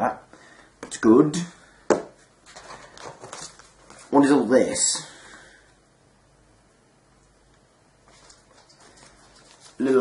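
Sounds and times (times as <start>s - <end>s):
paper packet rustling: 8.1s - 10.0s.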